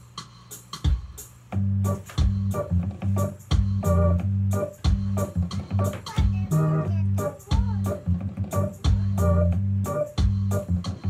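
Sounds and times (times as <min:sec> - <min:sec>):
drum beat: 0:00.0 - 0:11.0
organ playing chords: 0:01.6 - 0:11.0.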